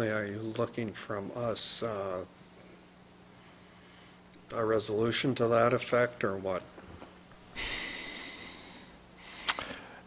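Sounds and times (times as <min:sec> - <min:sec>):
person breathing noisily: 0:07.5 - 0:10.0.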